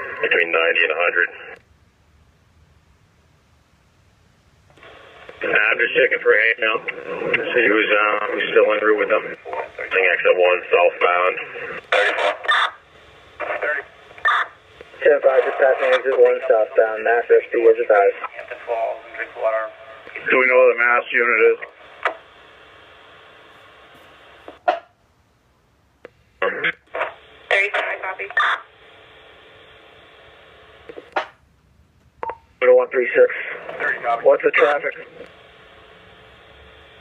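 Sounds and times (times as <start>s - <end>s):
radio transmission fragment: 0.0s - 1.6s, 4.8s - 24.6s, 26.4s - 31.4s, 32.5s - 37.0s
radio static hiss: 0.0s - 1.7s, 4.7s - 24.8s, 26.0s - 31.4s, 32.2s - 37.0s.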